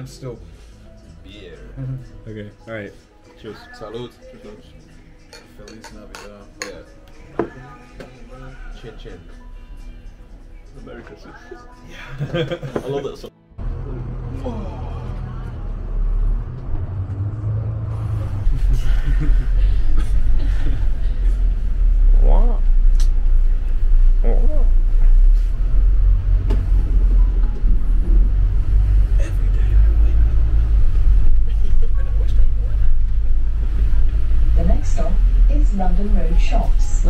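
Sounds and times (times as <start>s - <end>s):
bus engine rumbling: 13.6s - 37.0s.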